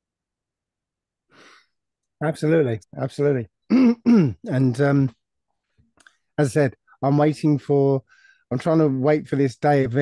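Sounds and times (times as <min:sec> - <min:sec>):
faint breath: 0:01.3 - 0:01.8, 0:08.1 - 0:08.5.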